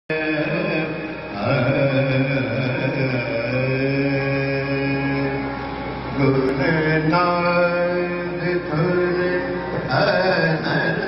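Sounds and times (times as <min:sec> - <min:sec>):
devotional hymn singing: 0:00.1 - 0:11.0.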